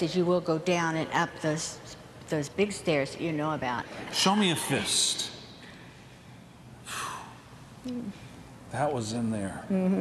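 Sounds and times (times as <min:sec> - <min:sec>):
low voiced mm: 0:06.9 - 0:10.0.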